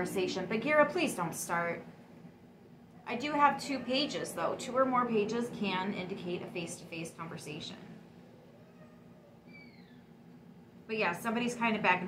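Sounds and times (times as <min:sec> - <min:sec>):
faint cat meow: 0:08.4 - 0:09.8.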